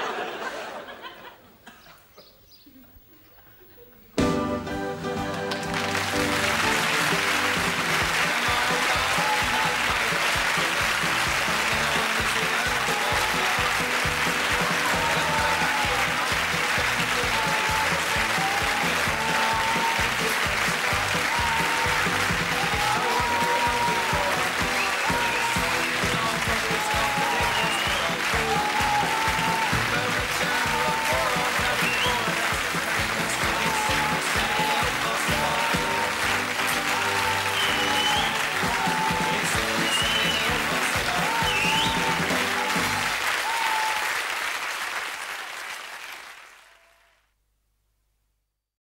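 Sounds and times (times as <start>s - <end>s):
sitcom theme music: 4.2s - 43.2s
studio audience applause: 5.0s - 47.3s.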